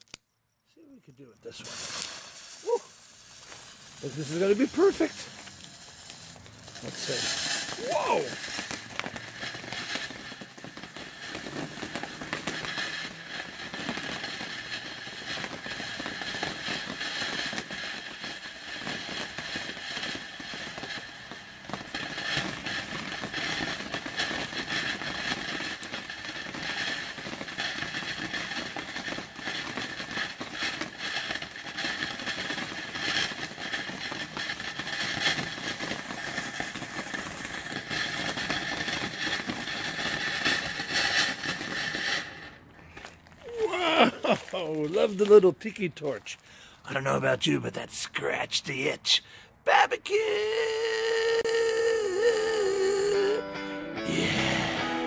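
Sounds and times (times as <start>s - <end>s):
small firework crackles: 0.0s - 53.4s, 54.1s - 55.0s
firework spraying sparks hissing: 1.4s - 53.4s, 54.1s - 55.0s.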